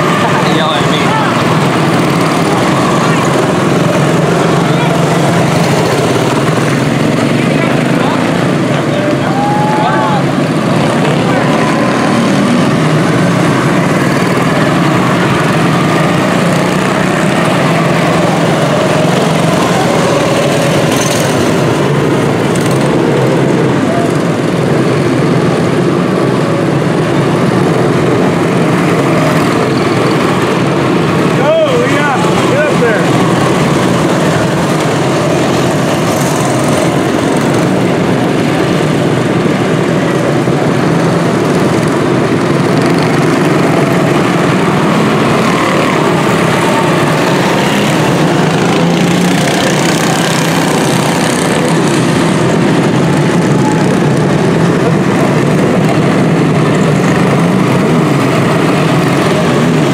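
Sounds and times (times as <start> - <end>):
small race car engines buzzing: 0.0 - 59.9.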